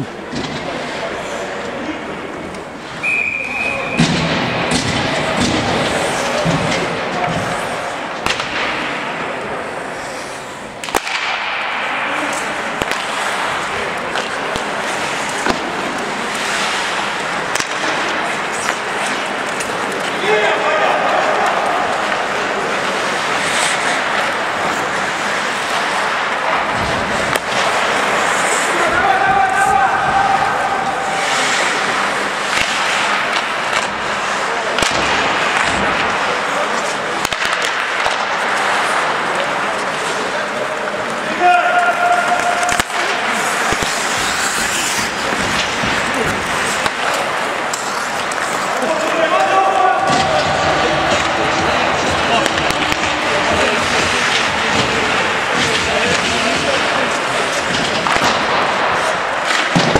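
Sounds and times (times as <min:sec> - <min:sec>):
skates scraping ice: 0:00.0 - 0:59.9
sticks and puck clacking: 0:00.0 - 0:59.9
players calling out: 0:03.0 - 0:37.0, 0:37.9 - 0:59.9.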